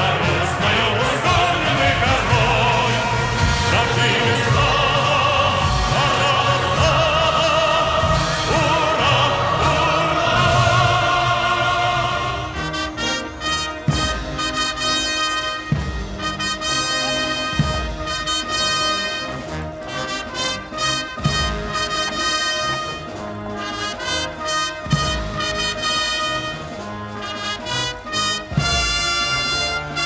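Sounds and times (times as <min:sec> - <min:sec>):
deep drum strokes: 0:00.0 - 0:12.4
brass band playing a march: 0:00.0 - 0:30.0.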